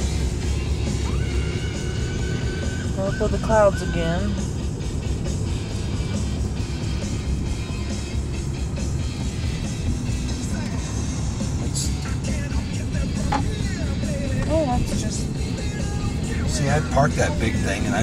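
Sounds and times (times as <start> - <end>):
car road and engine rumble: 0.0 - 18.0
music playing: 0.0 - 18.0.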